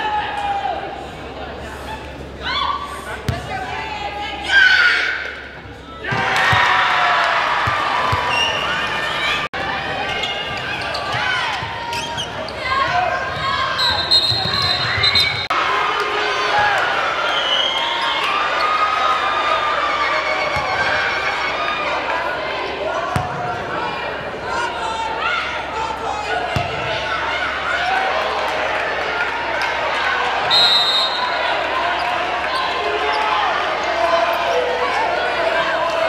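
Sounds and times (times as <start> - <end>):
crowd and player voices: 0.0 - 36.0.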